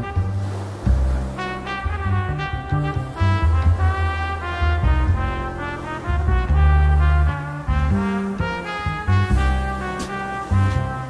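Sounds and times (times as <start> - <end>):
brass section held chords: 0.0 - 11.0
low bass line: 0.0 - 11.0.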